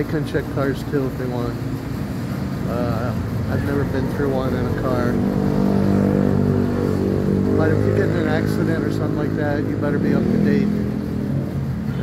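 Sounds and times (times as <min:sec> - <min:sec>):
motorcycle engine passing: 0:02.7 - 0:11.9.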